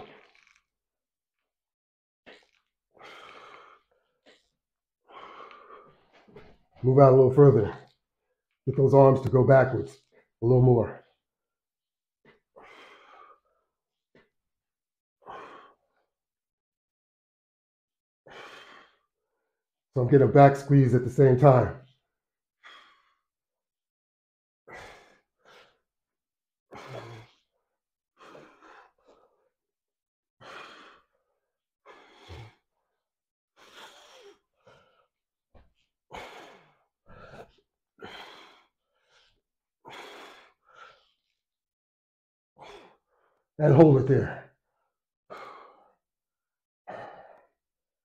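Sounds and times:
man breathing hard: 2.4 - 4.2, 18.3 - 19.0, 31.9 - 32.6, 36.1 - 41.2, 46.9 - 47.5.

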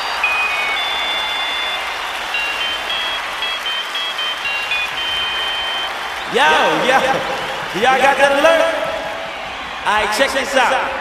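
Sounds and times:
crowd noise: 0.0 - 11.0.

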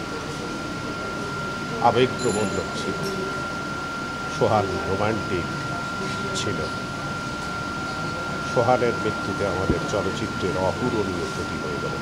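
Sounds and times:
background hum and hiss: 0.0 - 12.0
murmur of people: 0.0 - 12.0
man talking: 1.8 - 3.0, 4.3 - 5.6, 6.4 - 6.8, 8.4 - 12.0.

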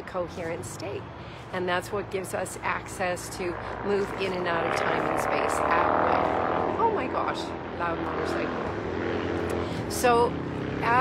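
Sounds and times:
motorcycle engine running: 2.0 - 11.0.

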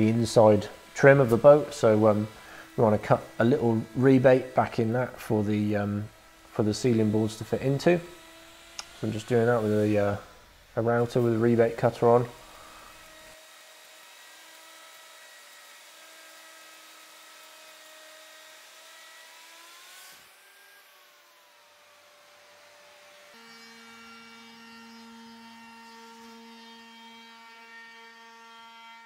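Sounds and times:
router whining: 0.0 - 29.0.

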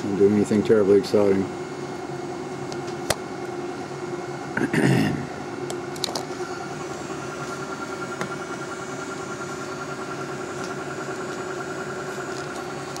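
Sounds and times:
lab equipment humming: 0.0 - 13.0
steady whining tones: 0.0 - 13.0.

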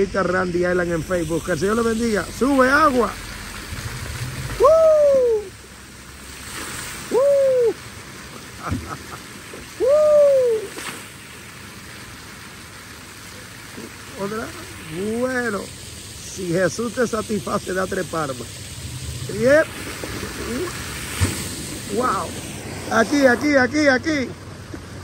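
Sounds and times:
fountain water splashing: 0.0 - 25.0
gliding hoot-like calls: 4.5 - 5.6, 7.0 - 7.8, 9.8 - 10.8.

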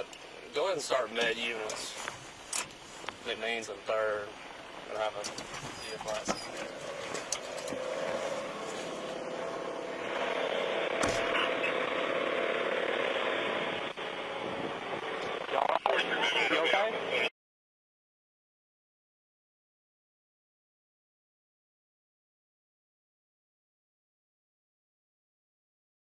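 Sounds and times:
muffled police radio traffic: 4.8 - 7.4, 9.8 - 12.2, 15.2 - 17.3.

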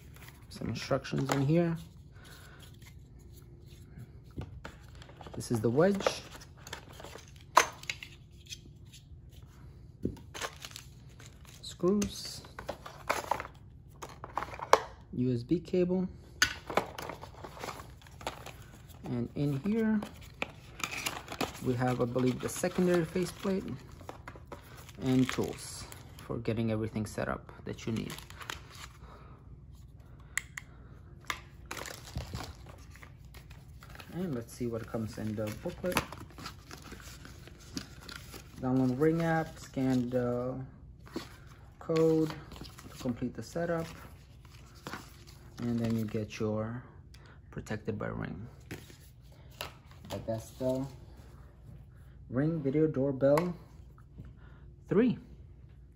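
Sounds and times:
packaging clicks and rustles: 10.2 - 14.9, 16.5 - 26.2, 31.3 - 40.2.

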